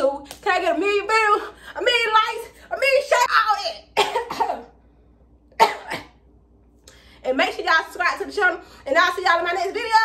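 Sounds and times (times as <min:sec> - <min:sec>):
woman coughing: 0:03.9 - 0:04.8, 0:05.6 - 0:06.2.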